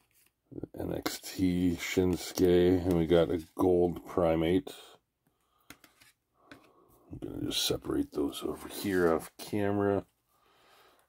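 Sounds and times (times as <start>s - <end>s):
trading cards clicking and rustling: 5.6s - 6.7s.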